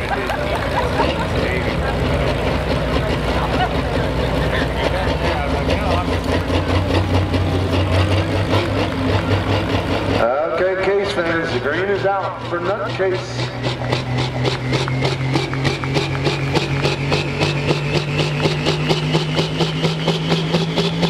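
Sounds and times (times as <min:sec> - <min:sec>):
diesel engine idling: 0:00.0 - 0:21.0
man talking: 0:10.2 - 0:13.6.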